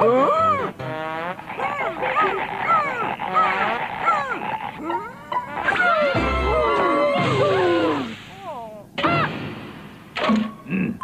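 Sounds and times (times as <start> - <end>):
cartoon character whimpering: 0.0 - 0.8, 1.6 - 9.3.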